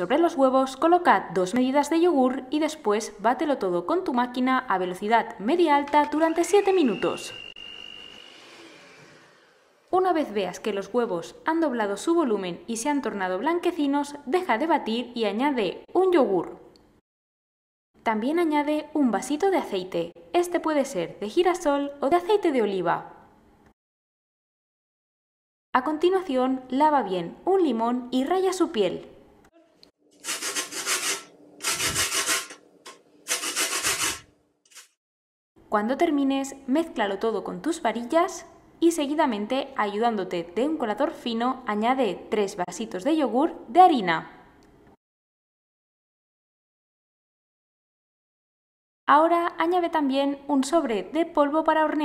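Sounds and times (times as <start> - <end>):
electric hand mixer whining: 6.1 - 9.9
lemon scraping on metal grater: 30.2 - 32.6, 33.3 - 34.9.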